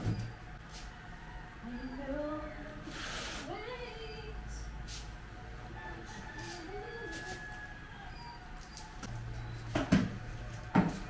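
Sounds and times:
faint rooster crowing: 0.6s - 3.0s, 5.6s - 9.1s.

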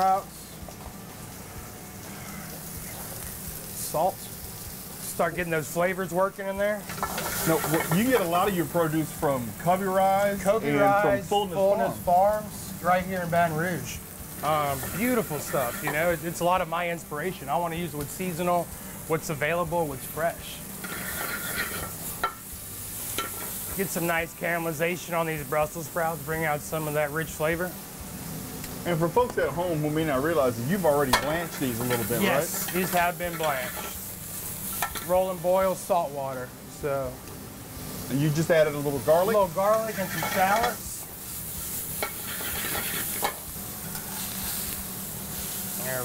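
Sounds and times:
steak sizzling in a skillet: 0.0s - 46.0s
vegetables frying and stirred: 0.0s - 46.0s.

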